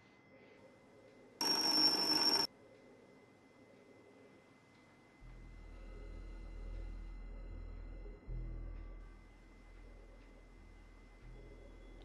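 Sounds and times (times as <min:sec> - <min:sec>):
high-pitched electronic ring: 0:01.4 - 0:02.5.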